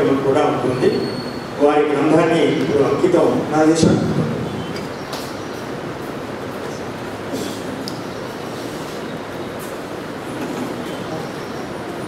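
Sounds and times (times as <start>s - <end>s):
rumbling hall room noise: 0.0s - 12.0s.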